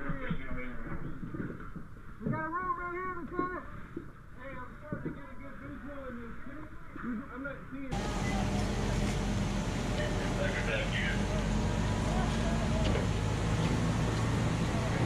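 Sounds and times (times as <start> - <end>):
muffled indistinct voices: 4.4 - 15.0
low hum: 7.9 - 15.0
steady rushing noise: 7.9 - 15.0.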